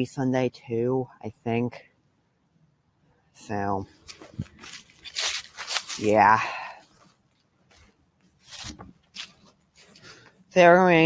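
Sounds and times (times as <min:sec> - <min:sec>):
footsteps crunching dry leaves: 0:04.0 - 0:07.1, 0:07.8 - 0:10.2.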